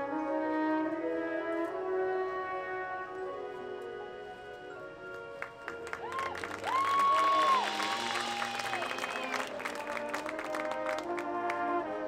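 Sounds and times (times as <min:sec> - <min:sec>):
marching band held chord: 0:02.4 - 0:12.0
spectators clapping and cheering: 0:05.1 - 0:11.8
loud high whoops: 0:05.9 - 0:09.5.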